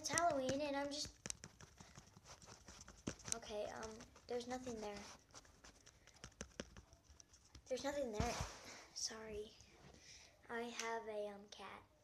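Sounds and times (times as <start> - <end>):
faint small clicks and taps: 0.0 - 5.0.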